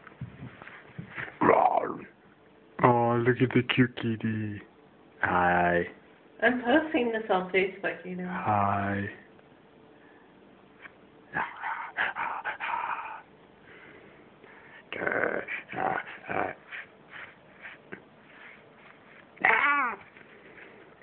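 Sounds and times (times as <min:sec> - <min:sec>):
cat meowing: 0:19.4 - 0:20.1.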